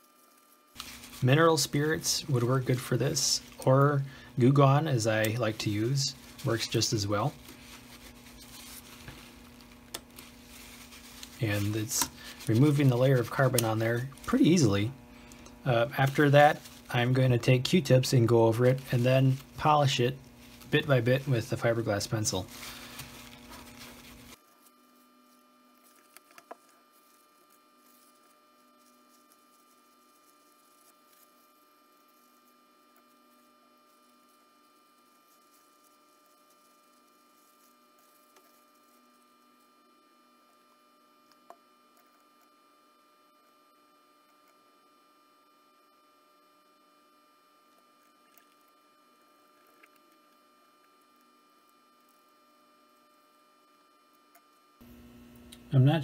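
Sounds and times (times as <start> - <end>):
faint electrical hum: 0.0 - 56.0.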